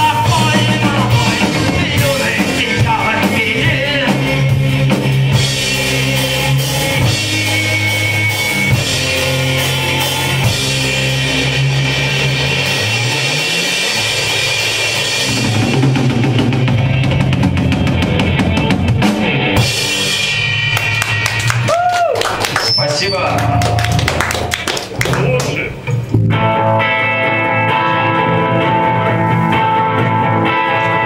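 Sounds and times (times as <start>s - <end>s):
drum and cymbal hits: 0.0s - 21.4s
live rock band playing: 0.0s - 31.0s.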